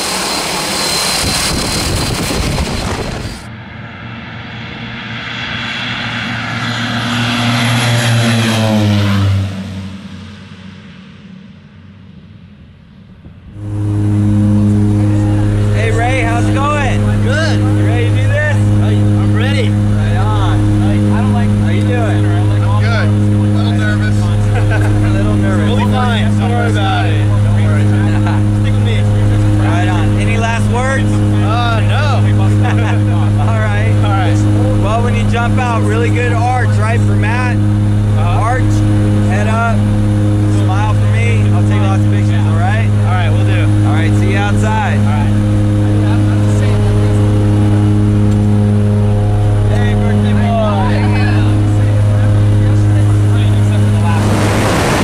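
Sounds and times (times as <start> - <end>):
plane engines drone: 0.0 - 55.0.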